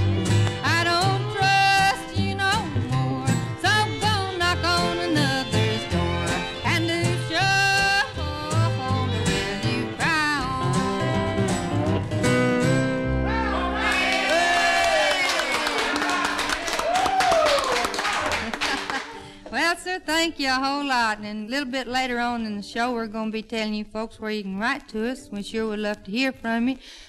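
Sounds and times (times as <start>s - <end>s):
country song with singing and guitar: 0.0s - 15.0s.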